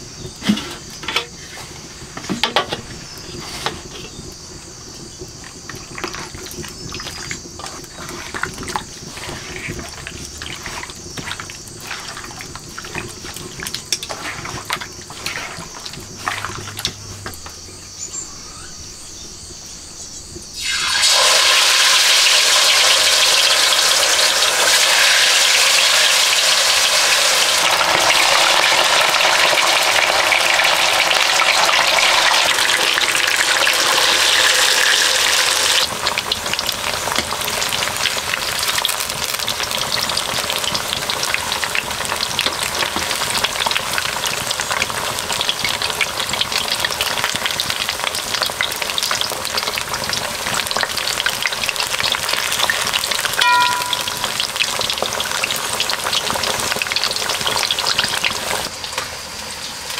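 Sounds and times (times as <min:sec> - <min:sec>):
fish deep-frying in hot oil: 0:00.0 - 0:18.0, 0:19.4 - 0:59.9
spoon turning fish in wok: 0:53.3 - 0:54.9
metal clink: 0:53.4 - 0:54.4.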